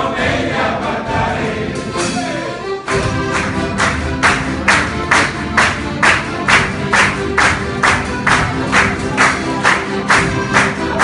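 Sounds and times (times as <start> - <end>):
men's folk group singing: 0.0 - 2.7, 10.2 - 11.0
accordion: 0.0 - 11.0
sharp percussive strikes: 1.1 - 9.4.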